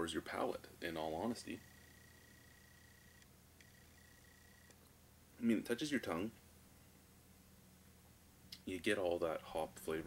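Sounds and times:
faint high-pitched whine: 0.0 - 10.0
faint low hum: 0.0 - 10.0.

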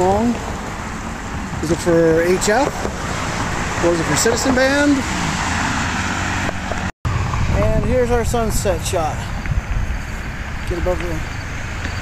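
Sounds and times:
cars driving by: 0.0 - 12.0.

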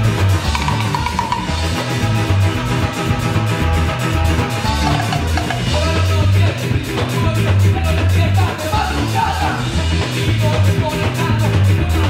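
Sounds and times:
drum kit beat: 0.0 - 12.0
electric bass line: 0.0 - 12.0
ska band playing live: 0.0 - 12.0
brass and sax horn section: 1.5 - 5.8.

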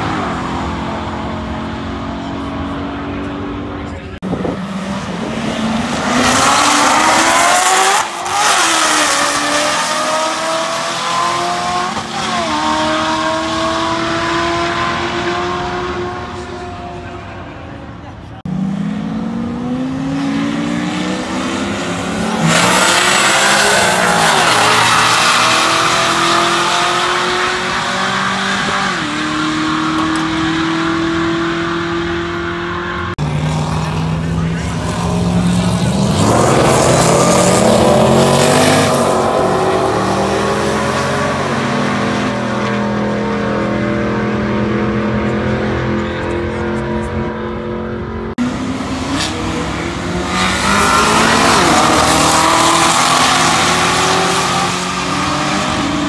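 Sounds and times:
racing car engines at full throttle: 0.0 - 56.0.

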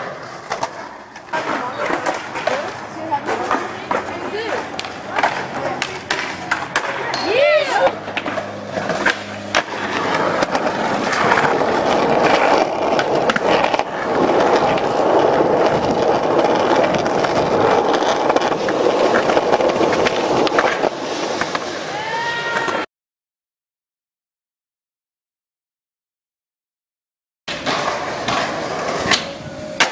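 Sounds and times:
skateboard clacks and knocks: 0.0 - 22.8, 27.5 - 29.9
skateboard wheels rolling on concrete: 0.0 - 22.9, 27.5 - 29.9.

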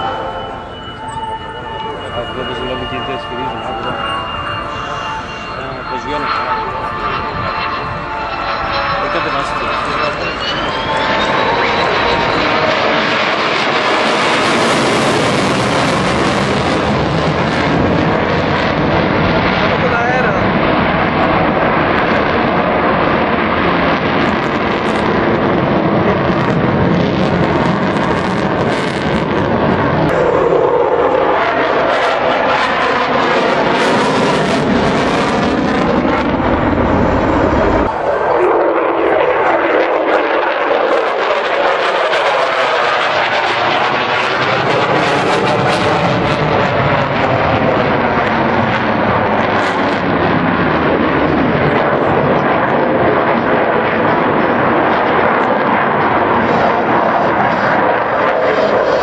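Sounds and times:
fighter jet roaring: 0.0 - 59.0.

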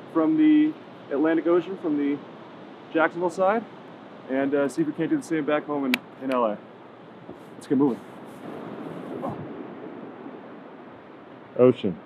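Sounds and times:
ocean surf: 0.0 - 11.7
wind: 0.0 - 12.0.

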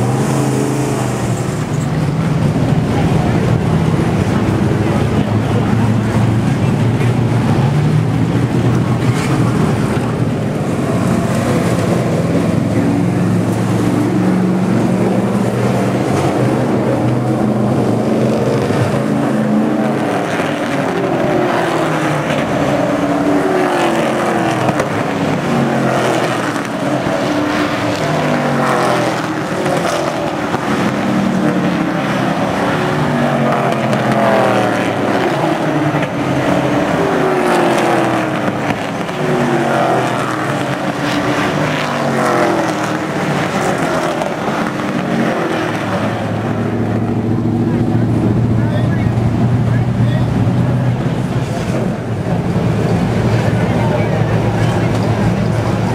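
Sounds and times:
race car engines passing: 0.0 - 55.9.

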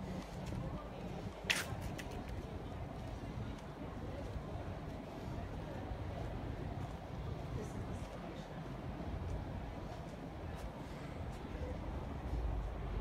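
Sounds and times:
faint indistinct voices: 0.0 - 13.0
low rumble: 11.6 - 13.0.

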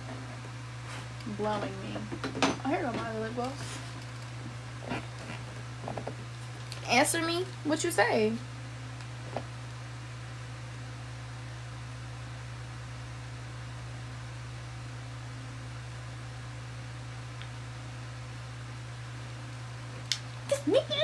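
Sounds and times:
electric fan humming: 0.0 - 21.0.

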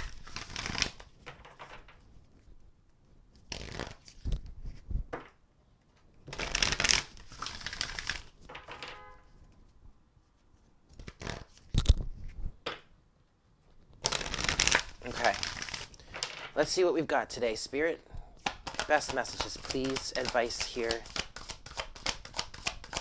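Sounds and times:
cards being shuffled by hand: 0.0 - 2.6, 3.3 - 5.4, 6.2 - 8.7, 9.5 - 12.4, 13.8 - 16.7, 18.4 - 23.0.

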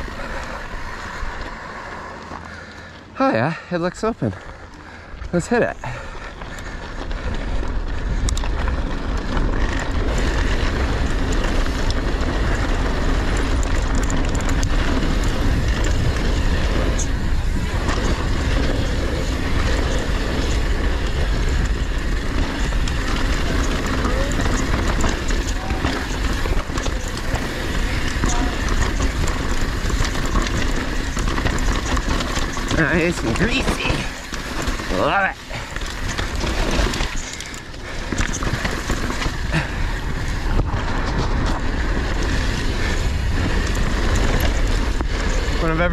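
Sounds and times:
bike rattling and clicking: 0.0 - 45.9
tyres rolling over dirt: 0.0 - 45.9
wind rushing over microphone: 5.1 - 45.9.

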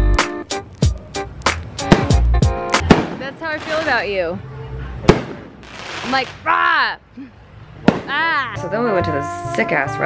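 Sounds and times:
sharp firework bang: 1.9 - 2.2, 2.8 - 3.9, 5.1 - 6.2
aerial fireworks exploding: 2.8 - 4.1, 5.1 - 6.4
person exclaiming: 8.1 - 8.6.

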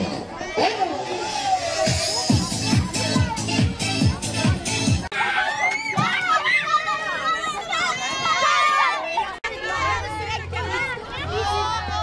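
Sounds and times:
children shouting: 5.1 - 12.0.

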